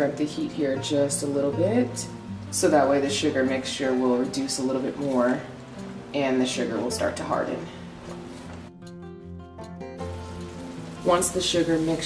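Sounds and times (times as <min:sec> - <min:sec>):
music with held notes: 0:00.1 - 0:12.0
syrup hissing in a skillet: 0:10.0 - 0:12.0.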